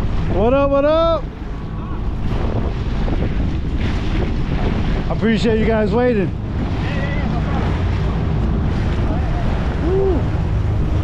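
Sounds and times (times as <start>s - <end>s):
jet ski engine running: 0.0s - 11.0s
water splashing against hull: 0.0s - 11.0s
wind buffeting microphone: 0.0s - 11.0s.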